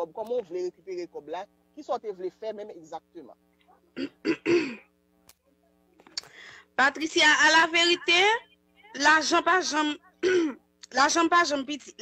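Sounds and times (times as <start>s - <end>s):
faint steady hum: 0.0s - 12.0s
woman clearing her throat: 4.0s - 4.9s, 10.2s - 10.6s.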